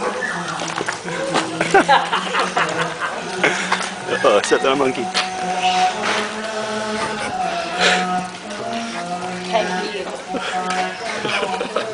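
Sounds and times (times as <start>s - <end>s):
voices chanting droning notes: 0.0s - 11.9s.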